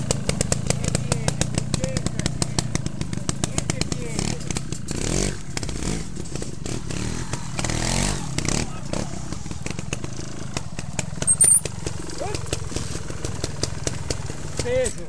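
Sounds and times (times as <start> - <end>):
motorcycle engine throttle blips: 0.0 - 14.8
short high squeak: 11.2 - 11.7.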